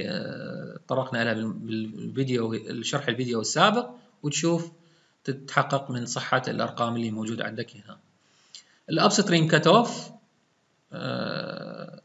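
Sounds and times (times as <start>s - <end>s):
man's drawn-out hesitation sound: 0.0s - 4.6s, 11.0s - 12.0s
man speaking: 0.0s - 4.7s, 5.3s - 8.0s, 8.9s - 10.2s, 11.0s - 12.0s.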